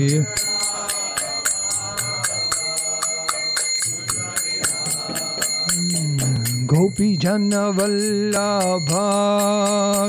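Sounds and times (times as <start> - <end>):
hand cymbals struck in a beat: 0.0 - 10.0
held instrumental tones: 0.0 - 10.0.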